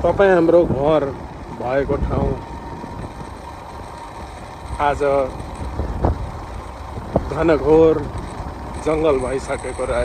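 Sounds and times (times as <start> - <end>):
road travel rumble: 0.0 - 10.0.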